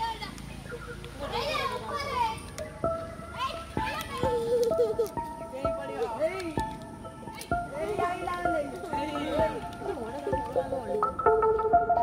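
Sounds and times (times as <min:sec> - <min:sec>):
plucked notes ringing: 0:02.8 - 0:12.0.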